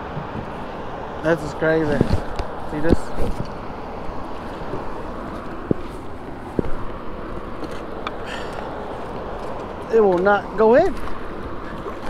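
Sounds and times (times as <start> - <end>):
water rushing around boat: 0.0 - 12.0
wind: 0.0 - 12.0.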